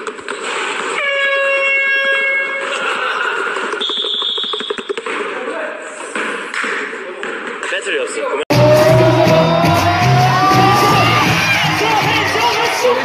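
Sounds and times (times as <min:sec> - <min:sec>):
buzzy horn-like tone: 0:01.0 - 0:02.7.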